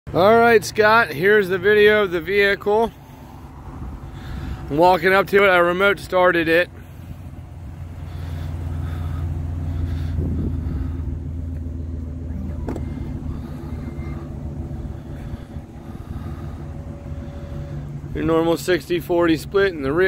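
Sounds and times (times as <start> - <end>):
car engine idling: 0.1 - 20.0.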